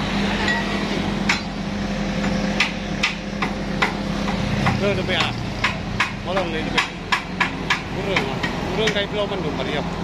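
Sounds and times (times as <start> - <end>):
steady engine hum: 0.0 - 10.0.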